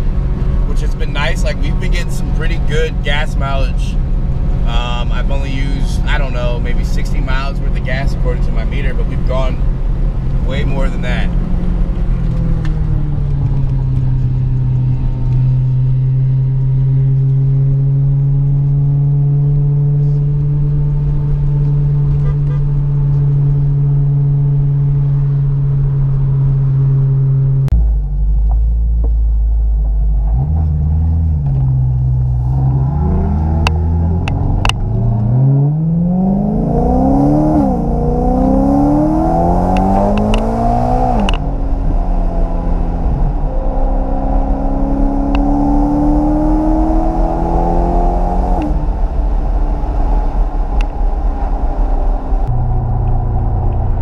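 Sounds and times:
car engine droning while cruising: 0.0s - 54.0s
car engine revving through gears: 30.1s - 54.0s.

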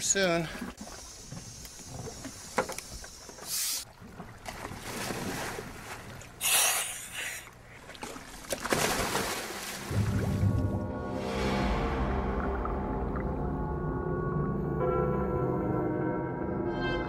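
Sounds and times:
water around moving boat: 0.0s - 15.0s
wind: 0.0s - 15.0s.

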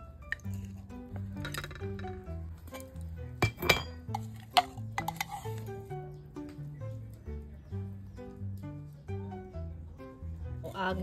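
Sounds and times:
music with slow bass melody: 0.0s - 11.0s
metal spoon clinking on dishes: 3.4s - 5.5s.

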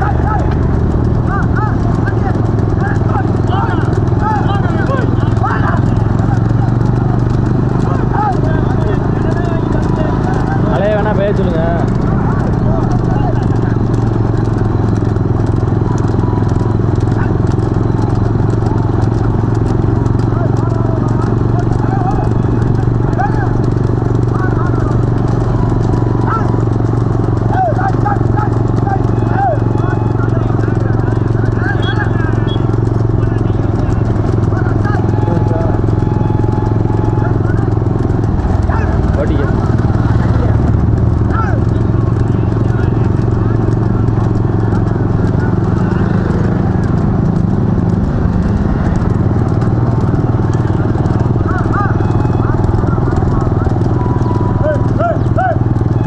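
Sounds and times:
hooves clip-clopping on asphalt: 0.0s - 56.0s
men shouting: 0.0s - 56.0s
motorcycles droning: 0.0s - 56.0s.

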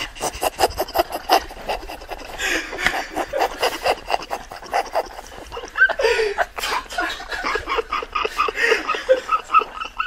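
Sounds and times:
people laughing hard: 0.0s - 10.0s.

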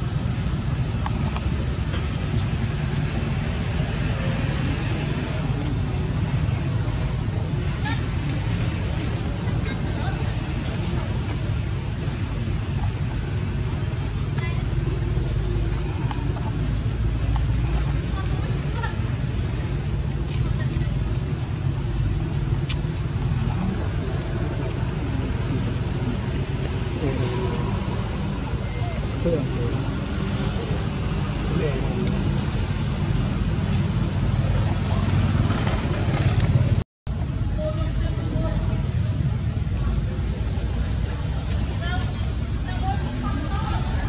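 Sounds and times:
faint indistinct voices: 0.0s - 44.0s
low traffic rumble: 0.0s - 44.0s.

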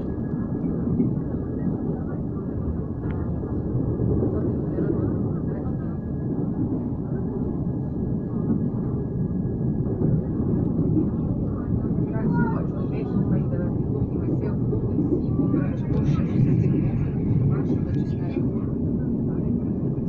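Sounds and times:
train rumbling over bridge: 0.0s - 20.0s.

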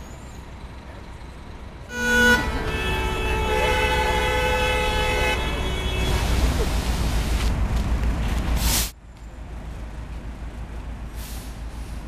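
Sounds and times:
vehicle horn: 1.9s - 6.6s.

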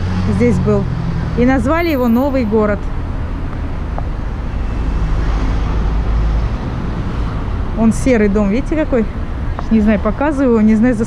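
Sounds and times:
rumble of passing cars: 0.0s - 11.0s.

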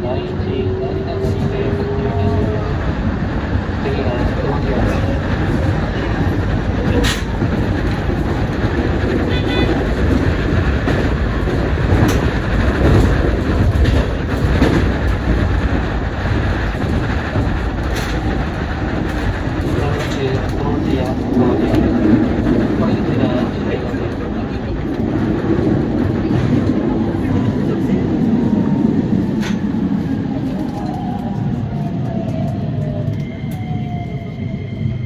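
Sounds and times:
wheels rumbling on rail: 0.0s - 35.0s.

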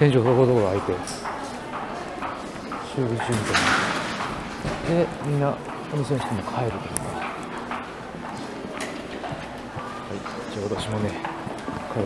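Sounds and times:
footsteps on tiled floor: 0.0s - 12.0s.

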